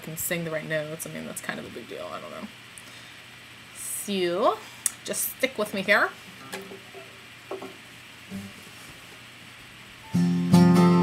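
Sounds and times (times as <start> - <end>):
plucked acoustic guitar notes: 10.1 - 11.0.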